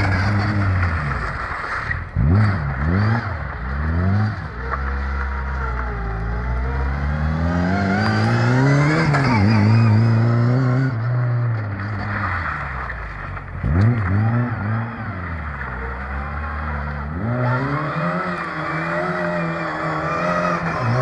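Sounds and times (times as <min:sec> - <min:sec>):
car engine revving: 0:00.0 - 0:21.0.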